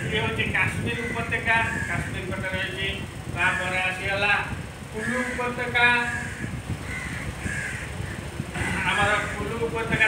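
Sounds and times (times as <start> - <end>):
harsh animal call: 5.0 - 9.4
man lecturing: 8.6 - 10.0.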